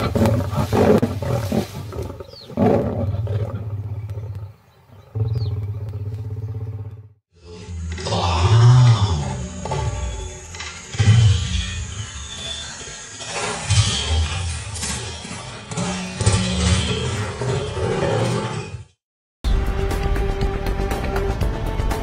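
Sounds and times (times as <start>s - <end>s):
lion roar: 0.0s - 18.9s
lions snarling and growling: 0.0s - 19.0s.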